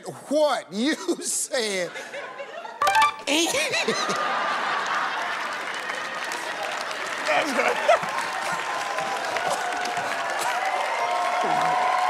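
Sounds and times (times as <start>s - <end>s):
audience applauding: 3.9s - 12.0s.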